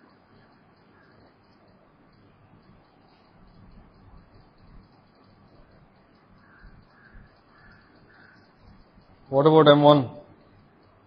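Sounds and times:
distant bird calling: 0.0s - 11.0s
faint room hiss: 0.0s - 11.0s.

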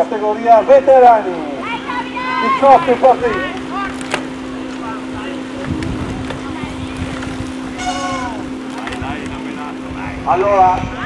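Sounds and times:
steady low hum: 0.0s - 11.0s
spectator calling out: 0.7s - 4.0s
wind rumbling on microphone: 3.0s - 11.0s.

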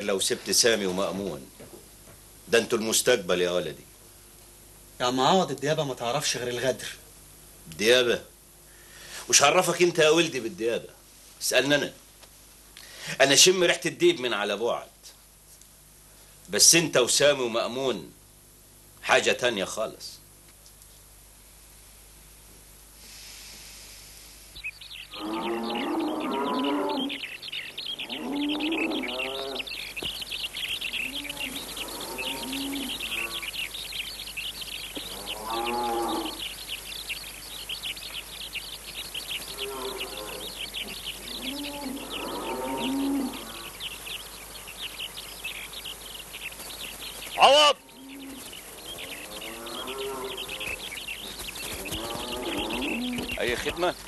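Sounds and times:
small birds chirping: 23.0s - 54.0s
farm animal calling: 24.6s - 54.0s.

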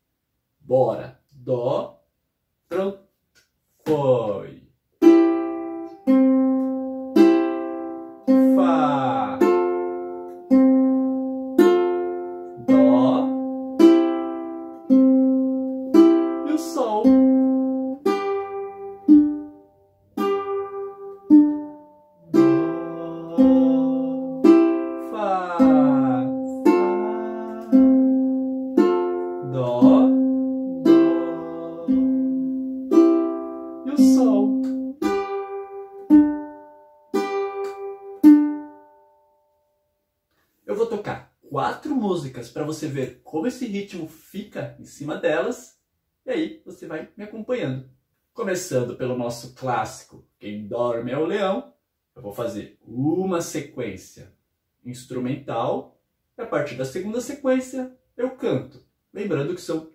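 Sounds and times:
ukulele fingerpicked slowly: 5.0s - 39.0s.

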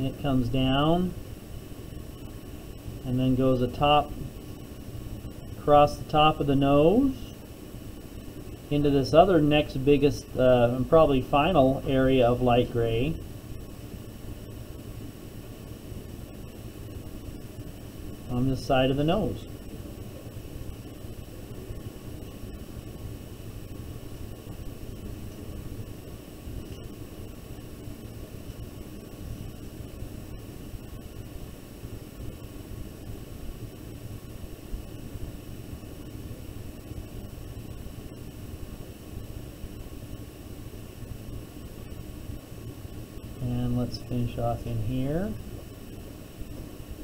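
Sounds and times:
even hiss: 0.0s - 47.0s
faint high whines: 0.0s - 47.0s
low hum: 0.0s - 47.0s.

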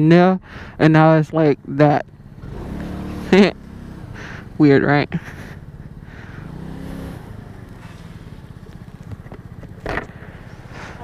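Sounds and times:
scooter engine idling: 0.4s - 11.0s.

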